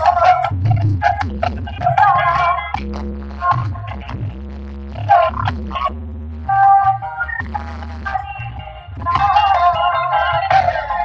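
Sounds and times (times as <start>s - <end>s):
loud dance music with deep bass: 0.0s - 11.0s.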